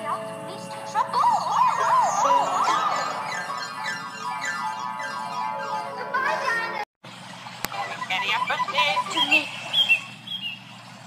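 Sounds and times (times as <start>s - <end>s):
voices: 0.0s - 6.8s, 7.7s - 10.5s
steady background hum: 0.0s - 11.0s.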